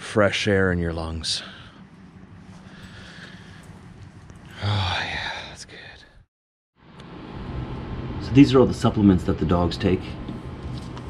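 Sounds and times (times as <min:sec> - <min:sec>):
faint indoor hum: 0:00.0 - 0:06.2, 0:06.8 - 0:11.0
man breathing in: 0:02.6 - 0:03.8
man sighing: 0:04.5 - 0:05.5.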